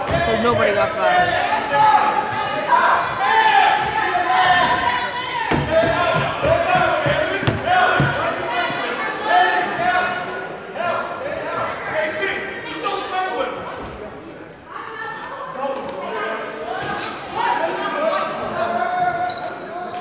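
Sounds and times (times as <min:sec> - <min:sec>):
basketball bouncing on hardwood floor: 0:05.5 - 0:08.2.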